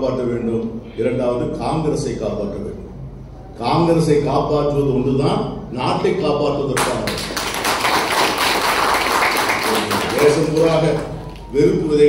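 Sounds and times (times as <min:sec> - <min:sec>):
audience applauding: 0:06.8 - 0:11.5.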